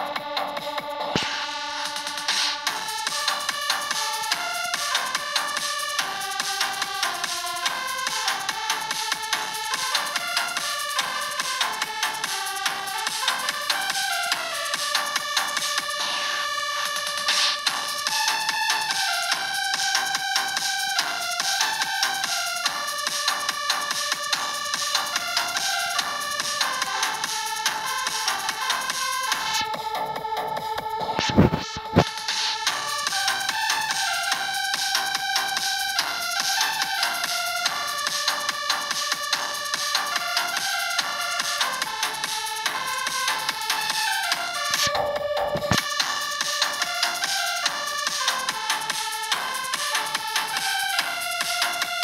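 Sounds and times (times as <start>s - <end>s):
drum machine beat: 0.0s - 52.0s
synth melody: 0.0s - 52.0s.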